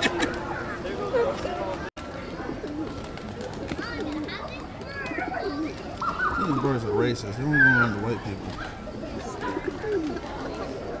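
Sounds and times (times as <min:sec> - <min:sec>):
people's voices: 0:00.0 - 0:11.0
pigeons cooing: 0:02.2 - 0:11.0.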